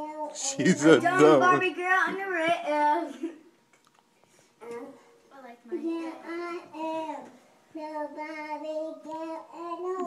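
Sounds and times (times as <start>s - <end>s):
girl singing: 5.8s - 10.0s.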